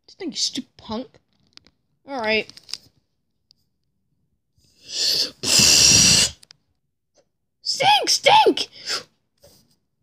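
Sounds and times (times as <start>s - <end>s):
mouth-made breathy hiss: 4.8s - 6.4s
rough blast of breath: 4.8s - 6.4s, 8.7s - 9.1s.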